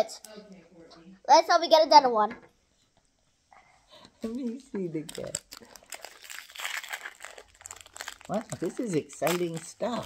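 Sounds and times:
toy packaging crinkling: 0:05.0 - 0:10.0.

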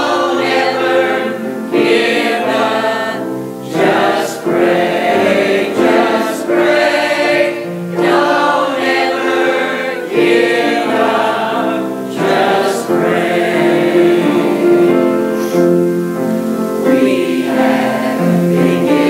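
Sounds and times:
church choir singing gospel: 0:00.0 - 0:19.0
piano accompaniment: 0:00.0 - 0:19.0.

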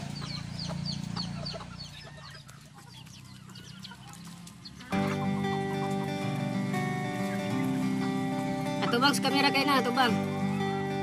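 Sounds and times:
chickens clucking: 0:00.0 - 0:11.0
background music: 0:04.7 - 0:11.0.

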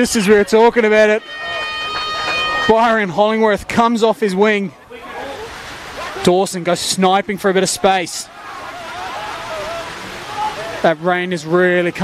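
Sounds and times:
heavy rain hissing: 0:04.8 - 0:12.0.

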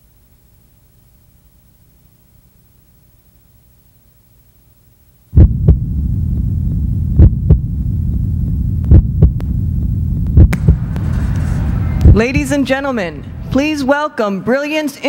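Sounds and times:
deep thumps: 0:05.4 - 0:13.9
low rumbling drone: 0:05.4 - 0:14.2
rising whoosh: 0:09.4 - 0:13.9.

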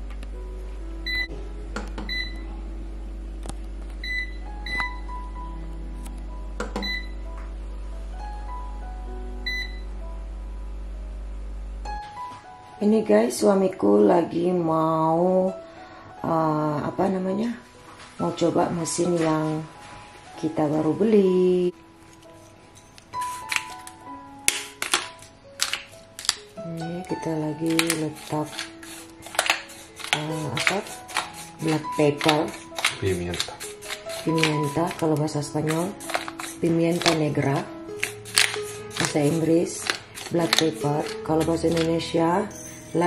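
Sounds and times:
soft background music: 0:00.0 - 0:43.0
pepper shaker rasping: 0:22.2 - 0:25.0, 0:25.6 - 0:42.1.

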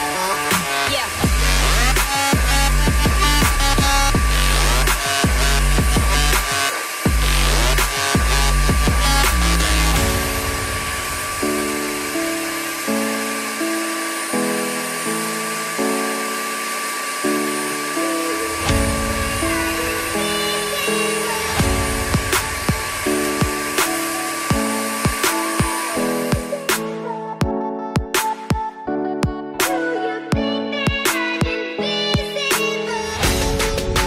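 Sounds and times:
carpet extractor whine and suction: 0:00.0 - 0:26.6
background music: 0:00.0 - 0:34.0.

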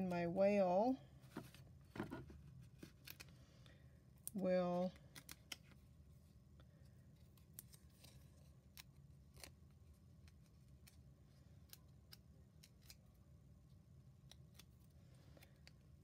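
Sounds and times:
faint low room hum: 0:00.0 - 0:16.0.

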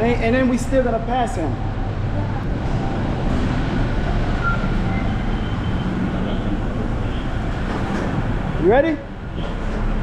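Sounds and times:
road noise: 0:00.0 - 0:10.0.

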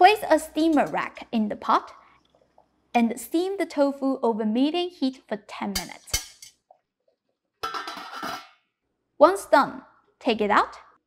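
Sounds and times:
metal lid clattering on pot: 0:07.6 - 0:08.6.

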